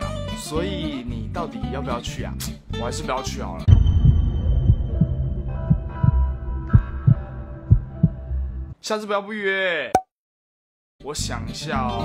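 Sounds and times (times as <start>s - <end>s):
sustained music tones: 3.7s - 8.0s
heartbeat thumps: 3.7s - 8.3s.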